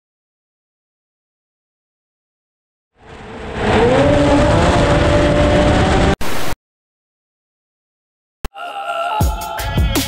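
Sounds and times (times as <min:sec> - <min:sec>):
snowmobile engine revving: 0:03.0 - 0:06.4.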